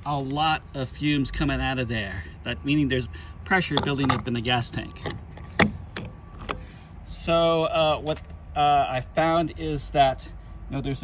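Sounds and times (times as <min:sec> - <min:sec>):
fuel cap clicking: 0:05.0 - 0:06.6.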